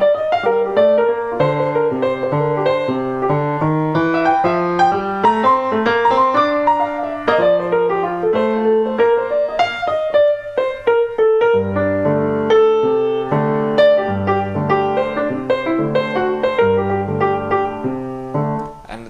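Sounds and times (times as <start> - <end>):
jazz piano playing: 0.0 - 19.0.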